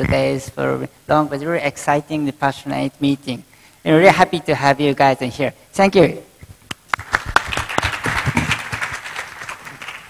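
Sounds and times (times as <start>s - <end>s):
audience applauding: 6.9s - 10.0s.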